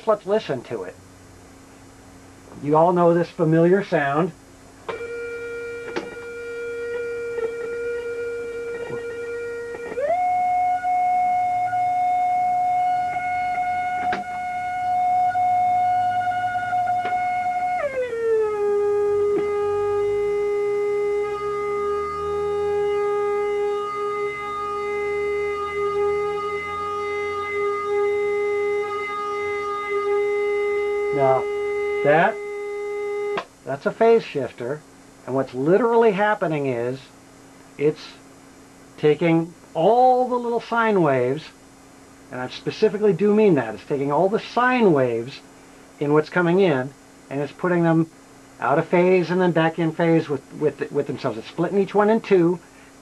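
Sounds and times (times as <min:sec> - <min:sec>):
phased electronic tone: 0:04.9 - 0:33.4.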